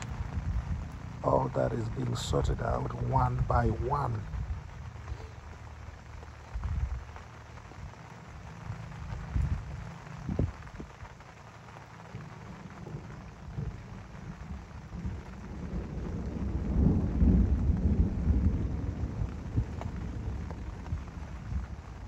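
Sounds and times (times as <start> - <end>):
low rumble of thunder: 0.0 - 22.0
rain falling: 0.0 - 22.0.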